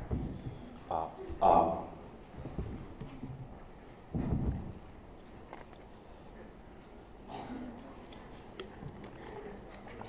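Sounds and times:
microphone being handled: 0.0 - 0.7, 2.4 - 5.7.

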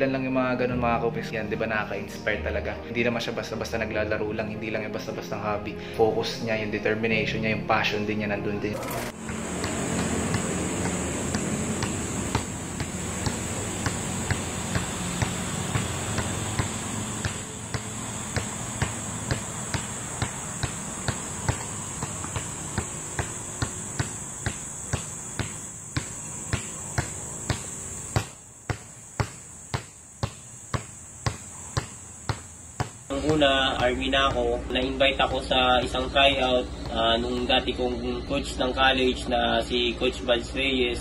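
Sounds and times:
basketball bouncing on pavement: 9.1 - 37.9.

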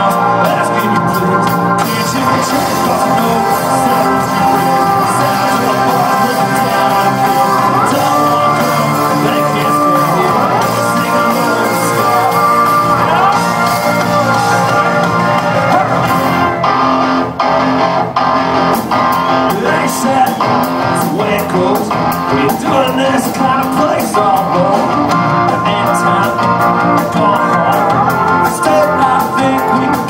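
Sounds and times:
live rock band playing: 0.0 - 30.0.

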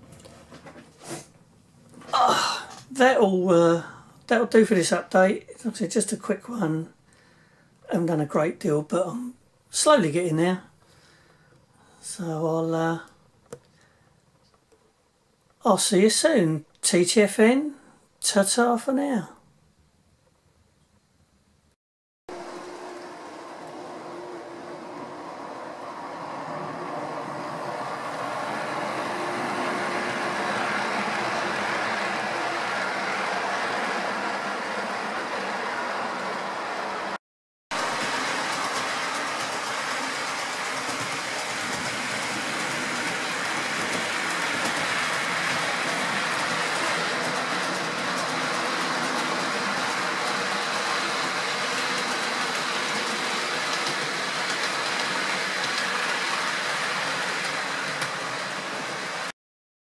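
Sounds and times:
faint motor whine: 22.3 - 33.0
model train wheels rolling: 22.3 - 37.2, 37.8 - 59.3.

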